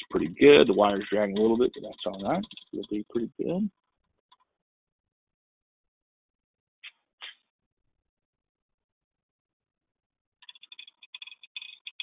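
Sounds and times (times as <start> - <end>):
faint rapid ticking and crackling: 0.0 - 4.6, 10.4 - 12.0.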